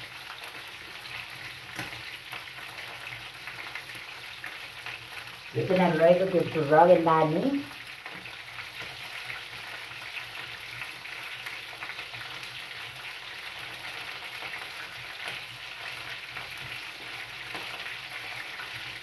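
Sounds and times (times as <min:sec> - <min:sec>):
meat sizzling in a frying pan: 0:00.0 - 0:19.0.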